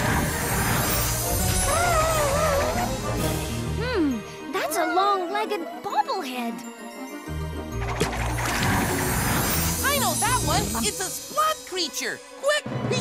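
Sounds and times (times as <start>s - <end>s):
cartoon music with jingling tinkles: 0.0s - 13.0s.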